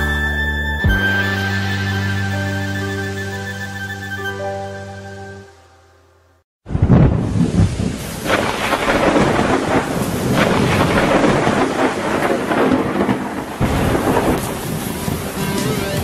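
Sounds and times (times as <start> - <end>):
rolling thunder: 6.7 - 15.9
steady downpour: 6.7 - 16.0.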